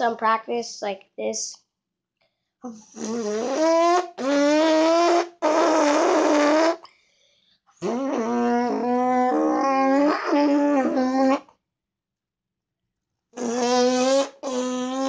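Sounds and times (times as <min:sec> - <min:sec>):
boy imitating motorcycle engine: 0:02.7 - 0:06.9, 0:07.8 - 0:11.4, 0:13.4 - 0:15.0.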